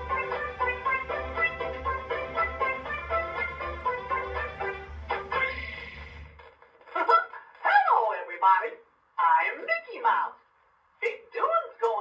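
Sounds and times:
character voice speaking: 7.1 - 10.4.

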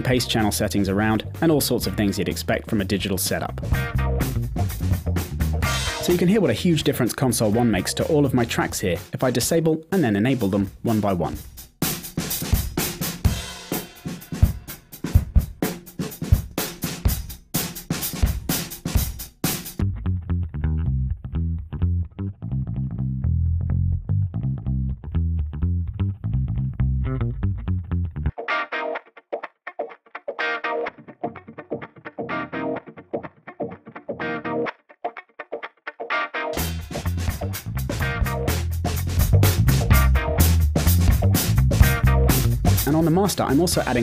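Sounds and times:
bass line: 0.0 - 9.1, 19.8 - 28.4, 36.6 - 44.0
guitar part: 0.0 - 11.4, 19.8 - 44.0
drum kit loop: 0.0 - 19.8, 36.5 - 44.0.

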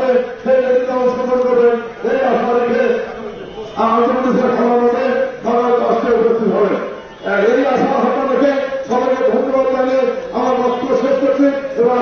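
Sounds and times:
man chanting into a microphone: 0.0 - 3.1, 3.7 - 12.0.

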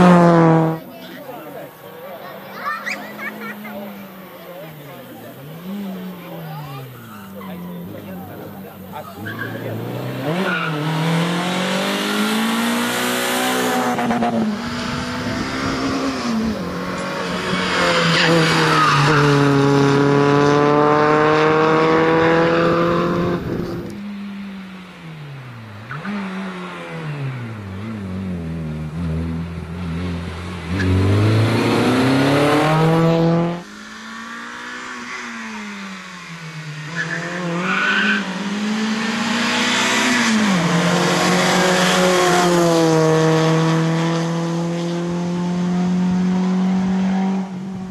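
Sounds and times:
rally car engine revving: 0.0 - 47.9
tyre squeal: 9.0 - 9.8.

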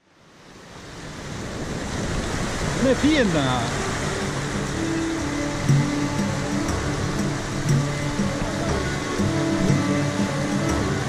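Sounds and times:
river water rushing over stones: 0.0 - 11.0
man talking: 2.8 - 3.8.

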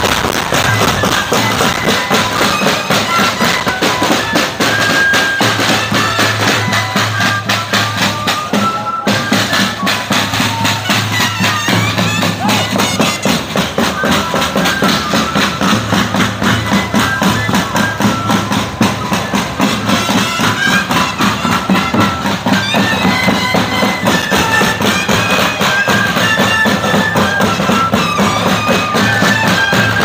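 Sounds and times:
drums beating steadily: 0.0 - 30.0
flutes playing reedy melody: 0.0 - 30.0.

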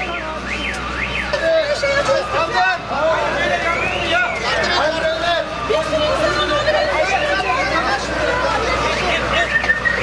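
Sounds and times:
emergency vehicle siren: 0.0 - 10.0
people talking in street: 0.0 - 10.0.

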